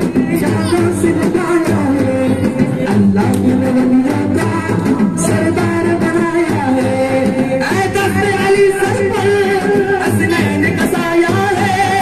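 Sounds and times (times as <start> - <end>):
men singing into microphones: 0.0 - 12.0.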